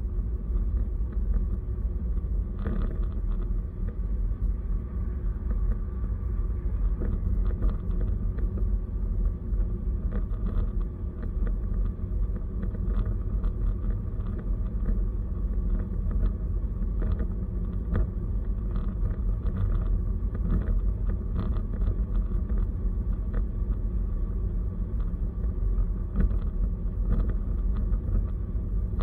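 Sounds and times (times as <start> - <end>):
car road and engine rumble: 0.0 - 29.0.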